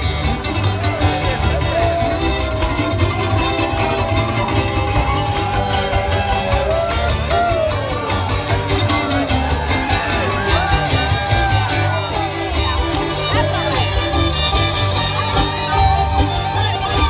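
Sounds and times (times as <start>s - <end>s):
strummed guitar and mandolin: 0.0s - 17.0s
fiddle sliding between notes: 1.6s - 17.0s.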